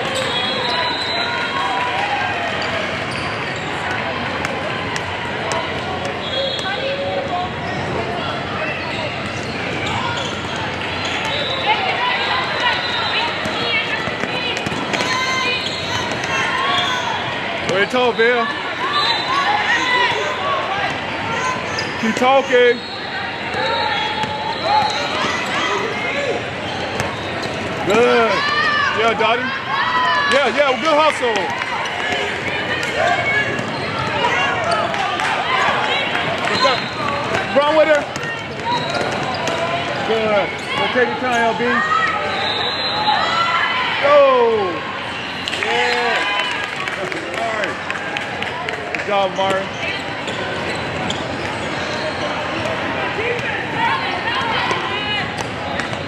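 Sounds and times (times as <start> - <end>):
crowd chatter: 0.0 - 56.0
shoes squeaking: 2.6 - 3.9, 20.8 - 29.5, 30.2 - 43.0, 49.2 - 52.8.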